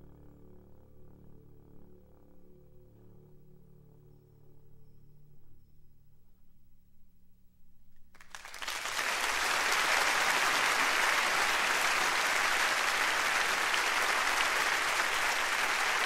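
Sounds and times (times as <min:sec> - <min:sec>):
audience applause: 0:08.2 - 0:16.0.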